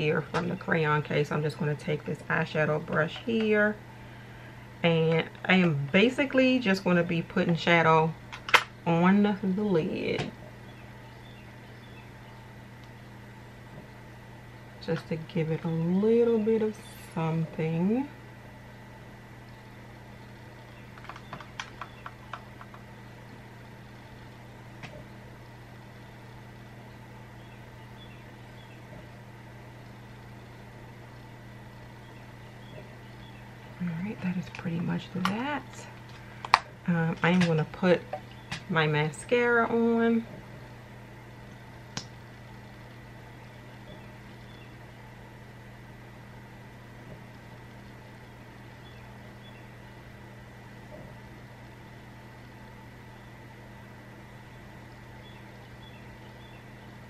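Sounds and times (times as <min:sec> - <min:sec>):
low room hum and hiss: 0:00.0 - 0:57.0.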